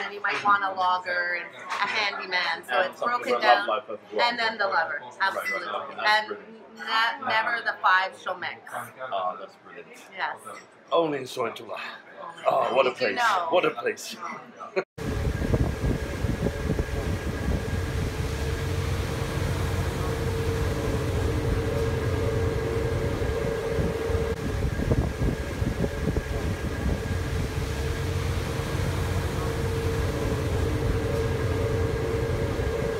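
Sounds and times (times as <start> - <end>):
boat engine drone: 15.0 - 32.9.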